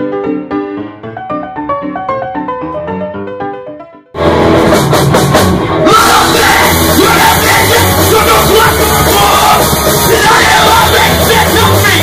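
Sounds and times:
punk rock band playing: 4.2s - 12.0s
singer yelling: 5.8s - 12.0s.

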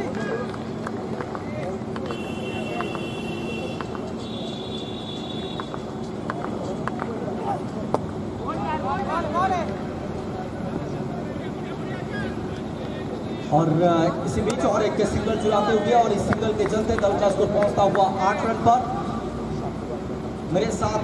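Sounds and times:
crowd and player chatter: 0.0s - 21.0s.

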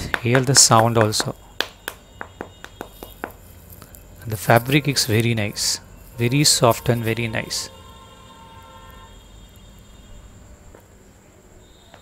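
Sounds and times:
fingertip tapping glove knuckle: 0.1s - 3.8s.

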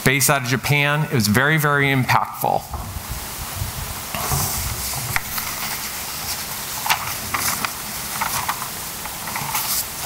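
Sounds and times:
steady room hiss: 0.0s - 10.0s
microphone handling clicks and rustles: 4.1s - 10.0s.

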